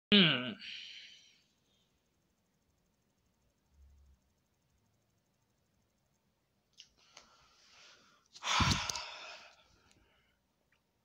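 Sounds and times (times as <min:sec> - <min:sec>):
person sighing loudly: 0:08.4 - 0:09.7.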